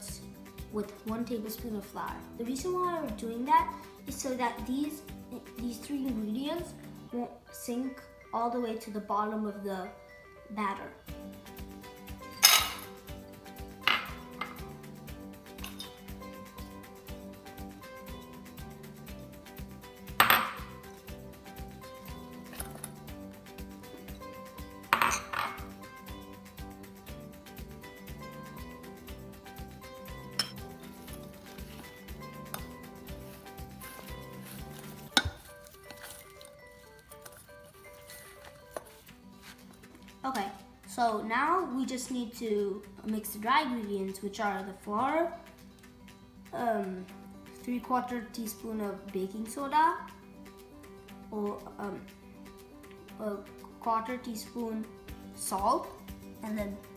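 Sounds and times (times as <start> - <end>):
light background music: 0.0 - 56.9
spoon clinking in a steel bowl: 12.2 - 12.9, 15.6 - 16.0, 24.9 - 25.7, 30.1 - 30.8.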